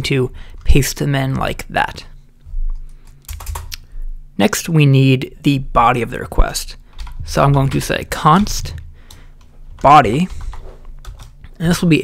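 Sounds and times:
computer keyboard keystrokes: 2.7 - 3.9, 6.9 - 11.5.

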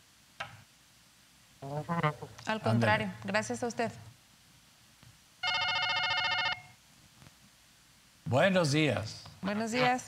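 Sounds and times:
telephone ringing: 5.4 - 6.8.

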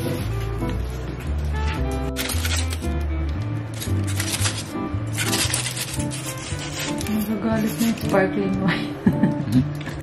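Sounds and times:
background music: 0.0 - 10.0
knife sawing on foil: 3.8 - 8.1.

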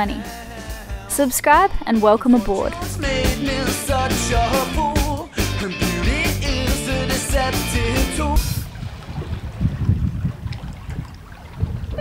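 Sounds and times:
song with singing: 0.0 - 8.6
wind buffeting microphone: 8.4 - 12.0.

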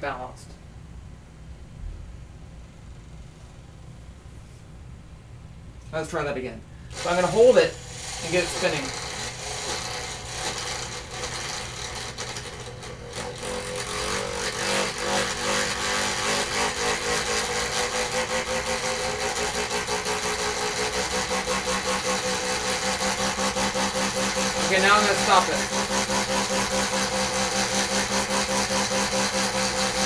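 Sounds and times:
electric motor whine: 6.9 - 30.0.

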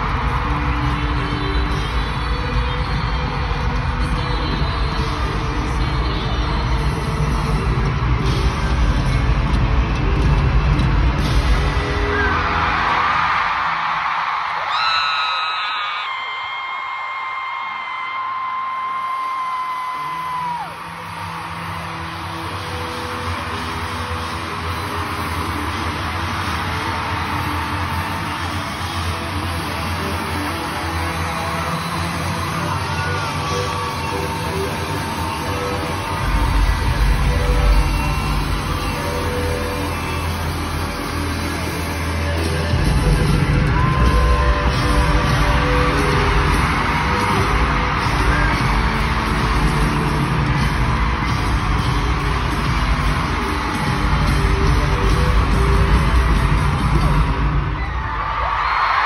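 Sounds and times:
band playing through pa: 0.0 - 13.0, 18.4 - 59.0
crowd yelling and cheering: 0.0 - 59.0.

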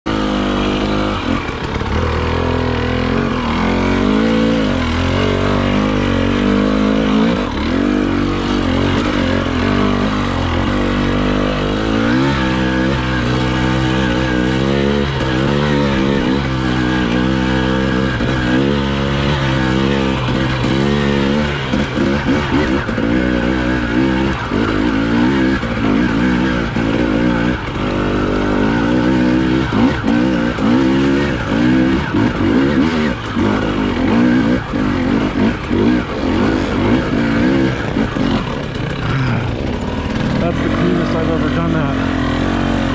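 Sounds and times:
motorcycle engine revving: 0.0 - 42.9.

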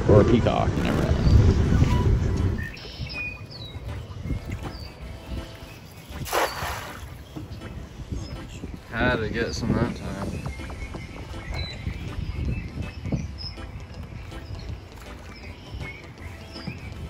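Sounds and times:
birds chirping faintly: 0.9 - 17.0
net splashing on water: 6.1 - 7.2.

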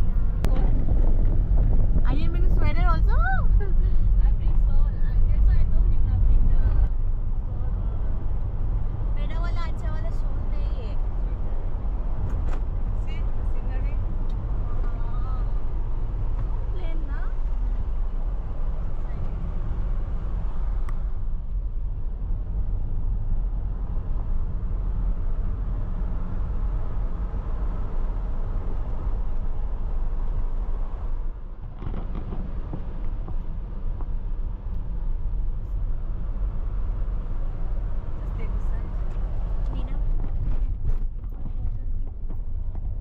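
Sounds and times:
car engine and tyre rumble: 0.0 - 43.0.

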